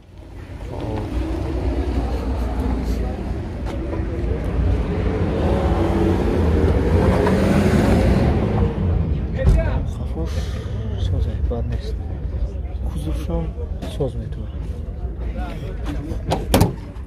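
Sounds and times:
indistinct voices: 0.0 - 17.0.

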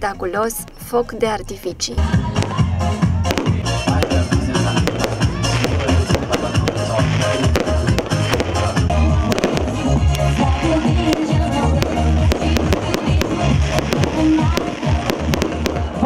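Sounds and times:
loud music with heavy beat: 2.0 - 16.0
fireworks popping and crackling: 2.3 - 16.0.

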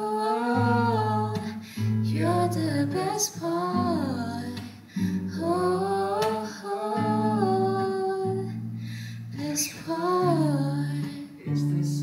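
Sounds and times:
classical guitar: 0.0 - 12.0
woman singing slow song: 0.0 - 12.0.

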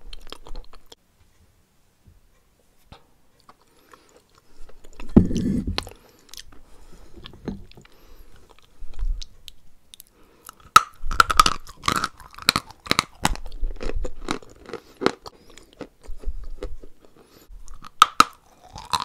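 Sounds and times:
squishy mouth chewing: 8.4 - 19.0.

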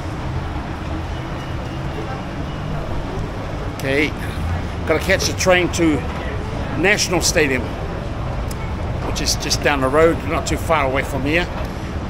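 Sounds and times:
rail station rumble: 0.0 - 12.0.

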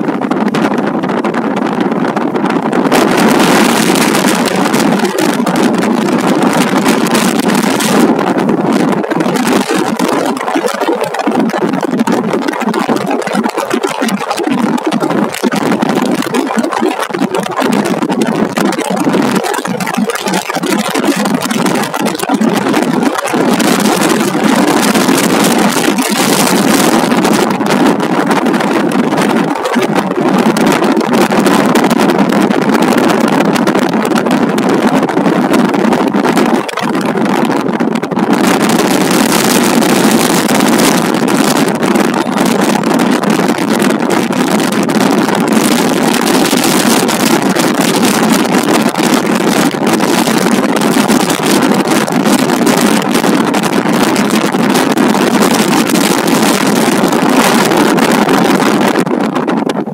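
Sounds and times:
wind rushing over microphone: 0.0 - 59.9.

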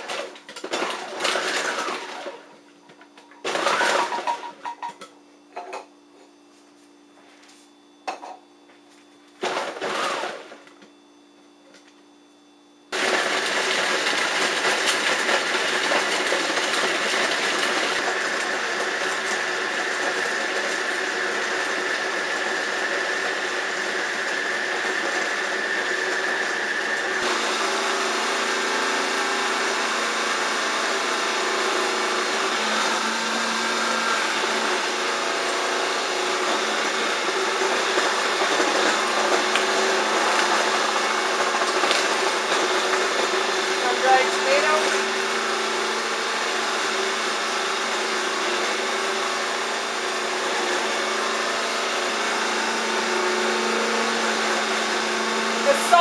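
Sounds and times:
food processor chopping vegetables: 0.0 - 4.9, 9.4 - 10.8, 12.9 - 56.0.

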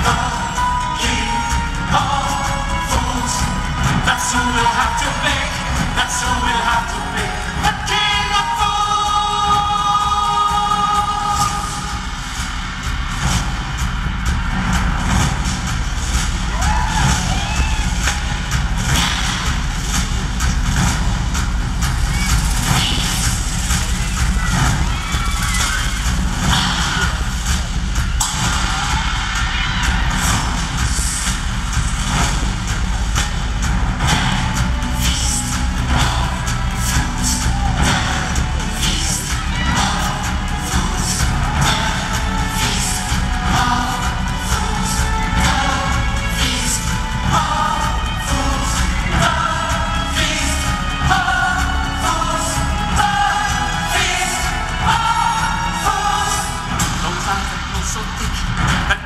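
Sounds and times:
live band dance music: 0.0 - 59.0.

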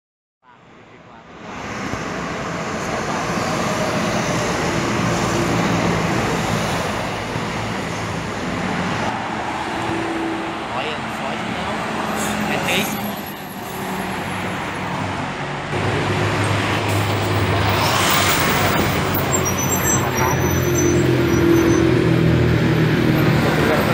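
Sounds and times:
cars and buses passing: 0.5 - 23.9
diesel engine hum: 0.6 - 23.9.

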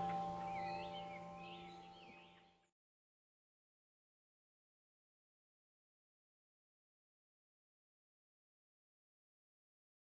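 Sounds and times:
singing bowl ringing: 0.0 - 2.4
birds chirping: 0.0 - 2.7.

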